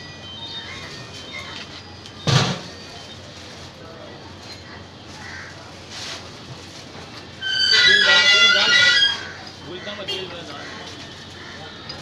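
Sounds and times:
crow cawing: 5.2 - 5.6.

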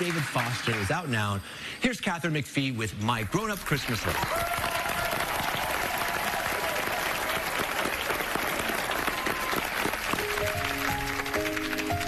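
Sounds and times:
audience applauding: 0.0 - 1.4, 3.3 - 12.0
grand piano chords: 10.0 - 12.0.

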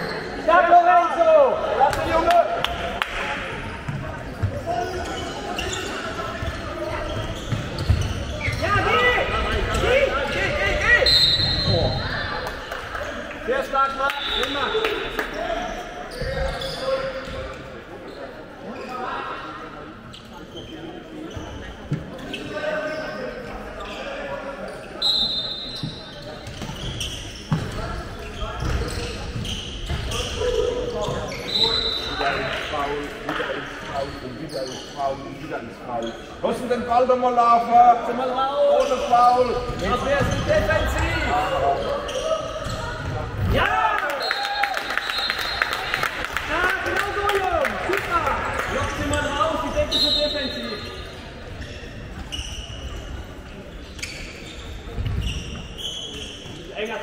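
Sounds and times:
sneakers squeaking: 0.0 - 0.5, 1.9 - 37.2, 38.2 - 46.3, 48.3 - 57.0.

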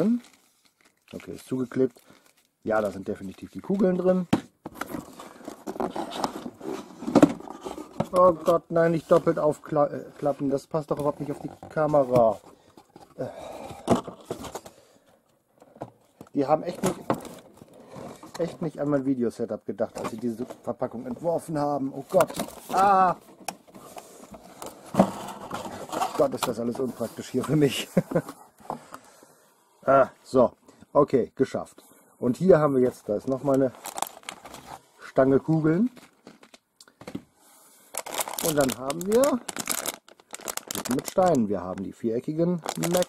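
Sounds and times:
cardboard box rustling and scraping: 4.8 - 8.1, 23.8 - 27.6.

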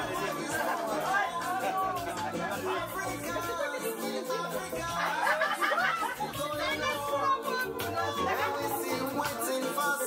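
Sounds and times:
people chatting: 0.0 - 10.0
song playing: 0.0 - 10.0.

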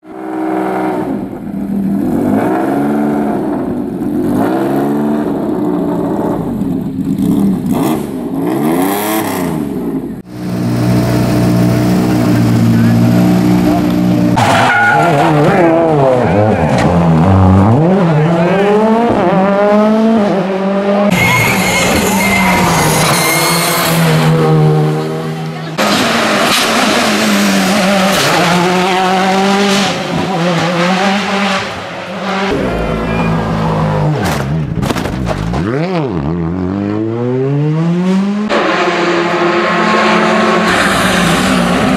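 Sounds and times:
rally car engines revving: 0.0 - 41.9.

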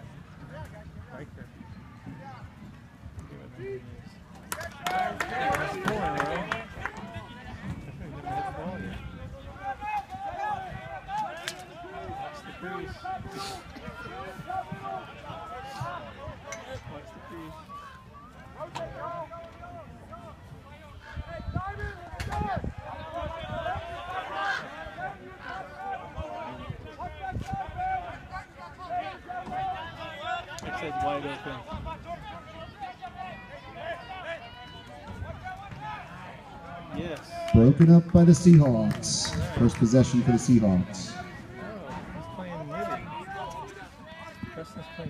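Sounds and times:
overlapping chatter of voices: 0.0 - 45.0.

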